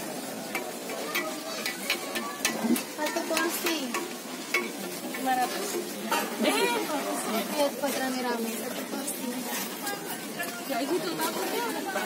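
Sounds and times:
oil sizzling on griddle: 0.0 - 12.0.

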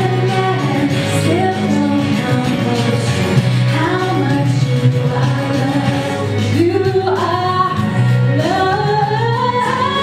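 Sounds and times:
woman singing gospel: 0.0 - 10.0.

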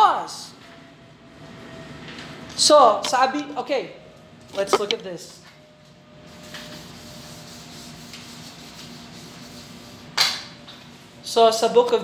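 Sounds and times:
soft rubbing noise: 6.3 - 10.1.

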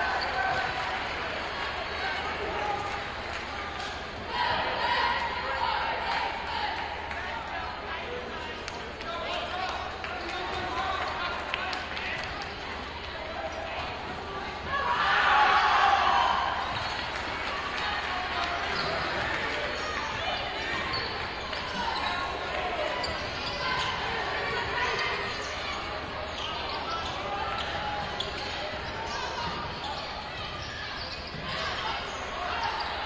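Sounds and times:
voices in a gym: 0.0 - 33.0.

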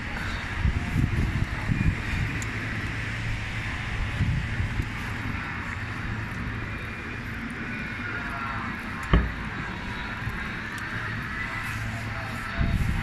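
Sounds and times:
hum of vehicles: 0.0 - 13.0
sharp thump: 9.1 - 9.4.

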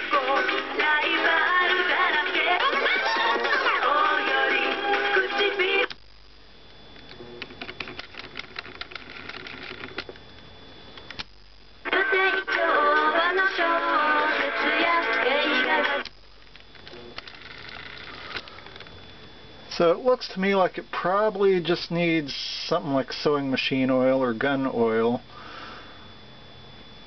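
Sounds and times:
music with singing from small speaker: 0.0 - 6.1, 11.8 - 16.2
tape hiss: 0.0 - 27.0.

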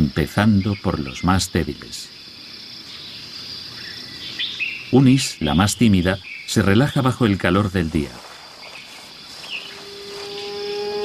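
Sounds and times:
high drone of insects: 0.0 - 11.0.

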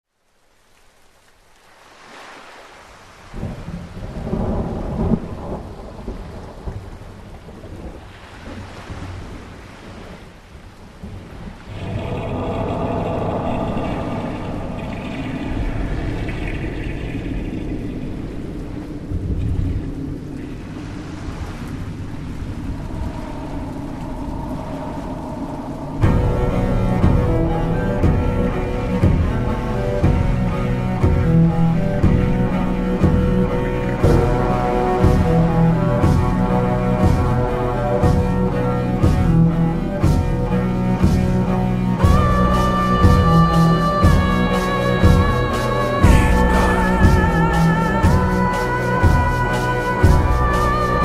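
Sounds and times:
rain: 0.0 - 51.0
rolling thunder rumbles: 3.4 - 10.2, 10.8 - 40.2
steady pitched drone: 11.7 - 19.0, 22.9 - 51.0.

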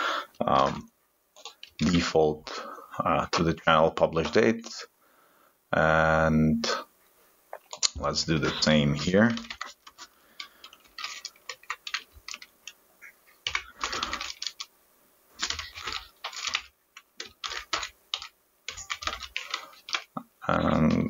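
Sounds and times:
typing on computer keyboard: 9.3 - 12.8, 13.4 - 14.7, 15.4 - 21.0.

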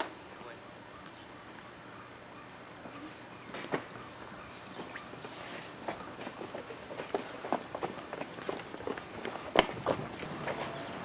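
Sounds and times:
running footsteps: 4.8 - 10.7.

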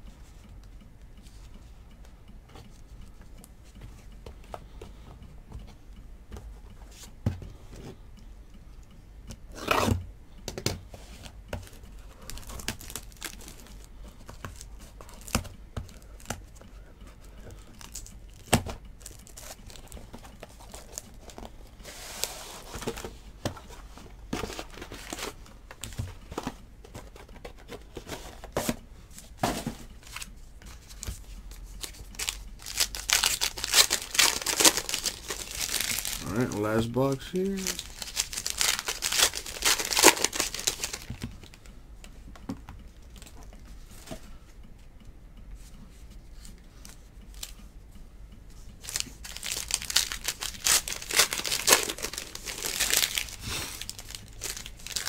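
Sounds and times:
packaging crinkling and tearing: 11.6 - 15.5, 17.6 - 21.6, 31.7 - 41.6, 48.8 - 55.0.

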